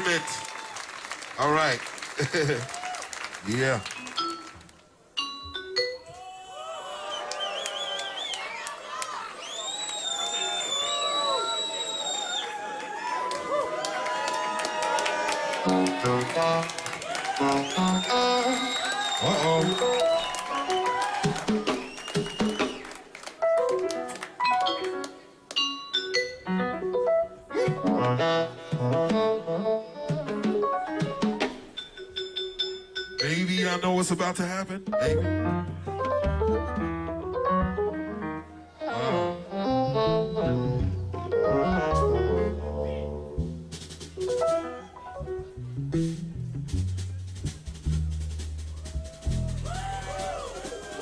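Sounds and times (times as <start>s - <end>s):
audience cheering and whooping: 0.0s - 1.3s, 2.2s - 3.4s, 6.1s - 23.2s, 48.7s - 51.0s
warbling whistle: 9.4s - 12.6s, 17.4s - 21.1s
keyboard notes: 15.6s - 22.6s, 23.4s - 46.8s
drum and percussion hits: 20.8s - 22.8s, 46.1s - 51.0s.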